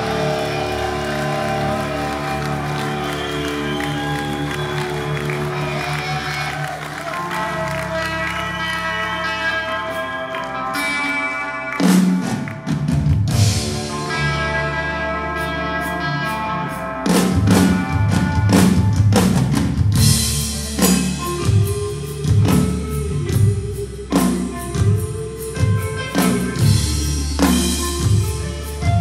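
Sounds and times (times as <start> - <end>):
bass guitar: 0.0 - 29.0
drum kit: 0.0 - 29.0.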